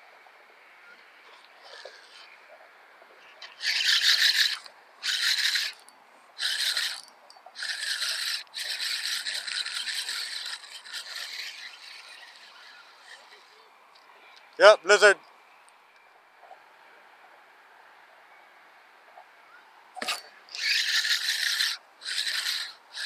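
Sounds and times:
fishing reel rasping whir: 0:01.3 - 0:02.3, 0:03.4 - 0:13.7, 0:20.0 - 0:23.0.

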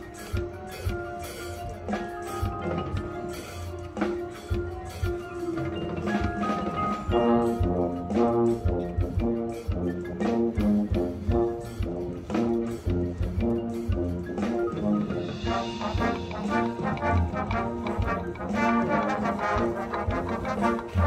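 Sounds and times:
drums: 0:00.0 - 0:21.0
mallet percussion: 0:00.0 - 0:21.0
brass chords: 0:05.8 - 0:21.0.

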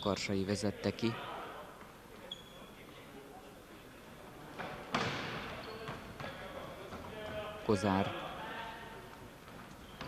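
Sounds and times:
faint hall ambience: 0:00.0 - 0:10.0
short high squeak: 0:02.3 - 0:02.7.

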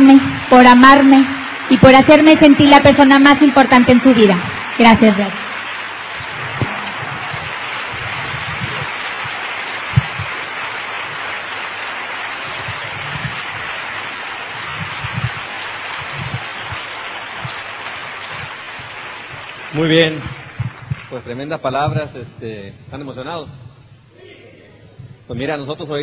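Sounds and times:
audience applauding: 0:00.0 - 0:21.8
low thumps: 0:06.2 - 0:10.3
sharp knock: 0:06.4 - 0:07.6.

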